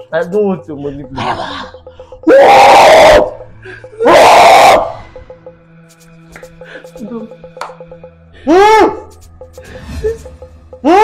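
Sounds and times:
faint background music: 0:00.0 - 0:11.0
loud shouts: 0:02.3 - 0:03.3, 0:04.0 - 0:04.9.

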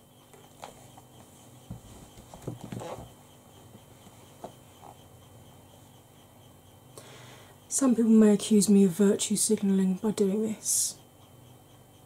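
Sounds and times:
palettes knocking on a table: 0:01.7 - 0:03.1.

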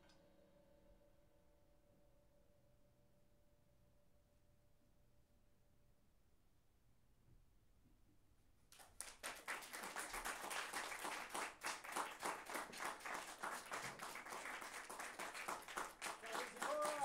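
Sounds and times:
audience applause: 0:08.7 - 0:17.0.

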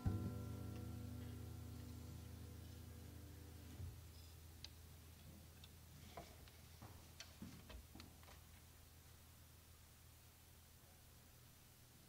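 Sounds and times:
low steady hum: 0:00.0 - 0:12.0
faint clicks and light knocks: 0:03.8 - 0:08.7.

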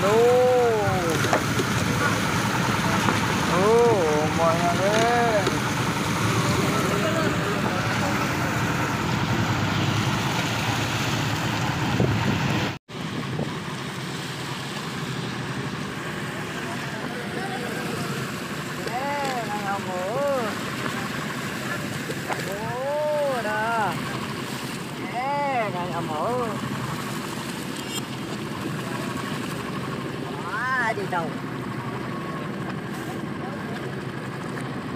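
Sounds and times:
boat and sea water noise: 0:00.0 - 0:34.9.

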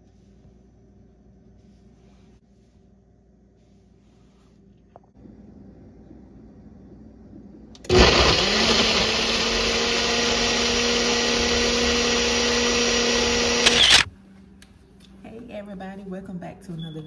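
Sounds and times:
blender motor running: 0:07.8 - 0:14.1.

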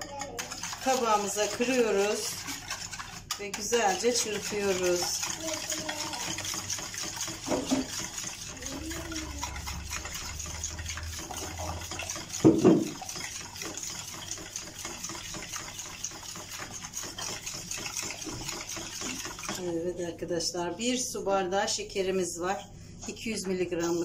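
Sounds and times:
fork beating eggs in a bowl: 0:00.0 - 0:20.1, 0:23.3 - 0:24.0
knock: 0:12.4 - 0:12.9.

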